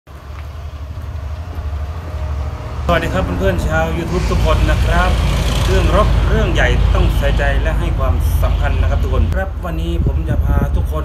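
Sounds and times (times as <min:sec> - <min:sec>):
low mechanical rumble: 0:00.1 - 0:11.0.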